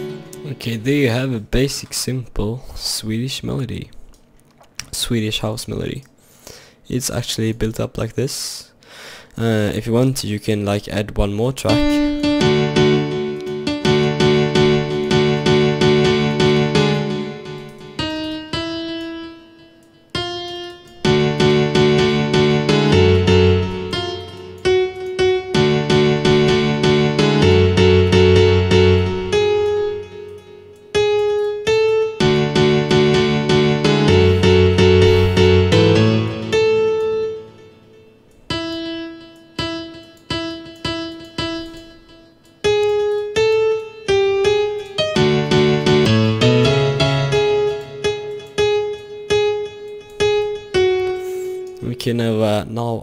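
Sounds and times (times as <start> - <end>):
single piano notes ringing: 0.0 - 1.4, 11.7 - 52.1
piano chords: 0.0 - 4.4, 11.7 - 53.0.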